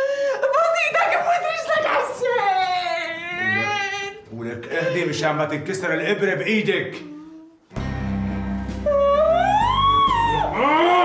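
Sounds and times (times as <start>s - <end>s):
woman screaming: 0.4s - 4.2s, 8.8s - 11.0s
background music: 7.7s - 11.0s.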